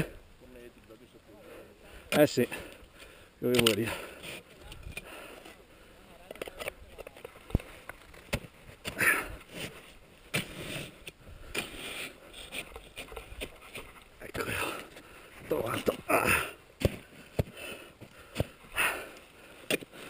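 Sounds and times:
person breathing: 1.3 - 6.1, 8.9 - 9.9, 14.5 - 15.5, 16.2 - 20.0
crampons scraping on rock: 6.2 - 20.0
ice axe planted into snow: 8.2 - 13.9.

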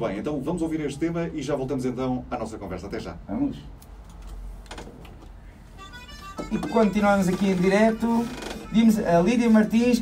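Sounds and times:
faint music: 5.4 - 10.0.

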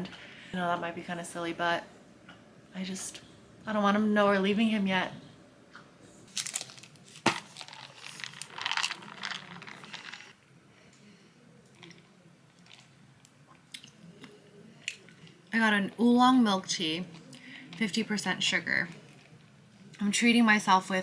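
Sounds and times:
plastic cup rustling and clicking: 6.3 - 10.4.

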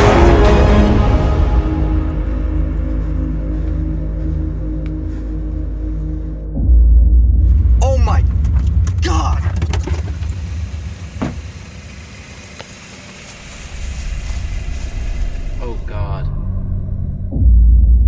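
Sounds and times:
car engine rumbling: 7.1 - 17.2.

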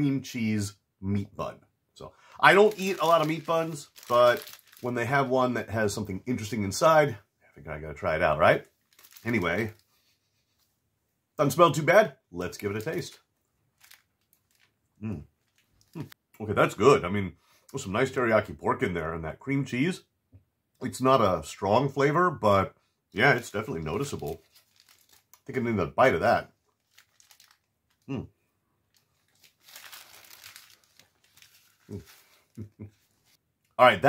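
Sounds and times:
paper wrapper rustle: 2.4 - 5.3, 8.7 - 10.5, 13.8 - 14.7, 23.4 - 25.6, 26.6 - 28.1, 28.9 - 33.4.

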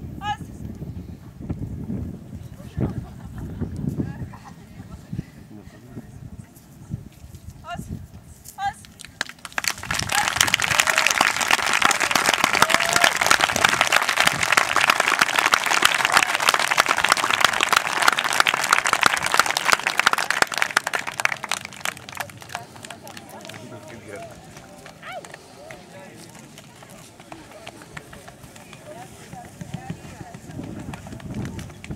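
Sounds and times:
crowd clapping: 9.0 - 31.9
voices talking: 20.2 - 31.9.

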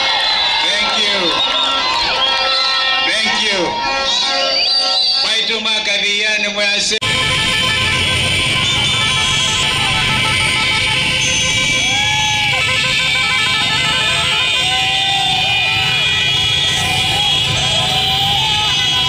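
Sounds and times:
people shouting: 0.0 - 5.3, 11.3 - 19.0
motorcycle horns hooting: 1.3 - 5.4, 7.0 - 19.0
motorcycle engines running: 7.2 - 19.0.

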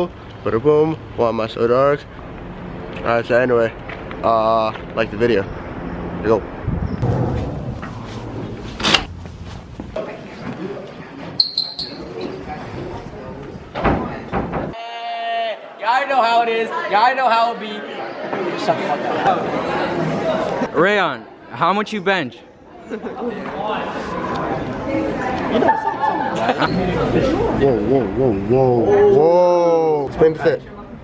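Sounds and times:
voices echoing in a hallway: 9.9 - 31.0
sneaker squeaks on polished floor: 11.4 - 12.2
people chatting: 23.0 - 31.0.

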